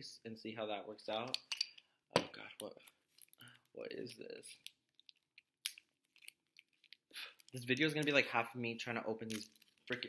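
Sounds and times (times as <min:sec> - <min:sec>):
faint crinkles and clicks: 0:02.5 - 0:08.2, 0:09.2 - 0:10.0
teeth tugging plastic wrapper: 0:04.6 - 0:07.7.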